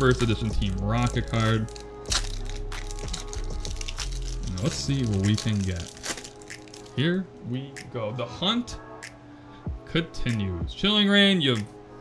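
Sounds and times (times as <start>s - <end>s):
foil pack ripping open: 0.0s - 7.0s
foil wrapper crinkling: 0.0s - 7.0s.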